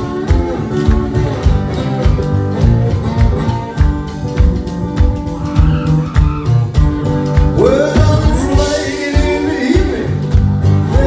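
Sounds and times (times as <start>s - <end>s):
acoustic guitar strummed and picked: 0.0s - 11.0s.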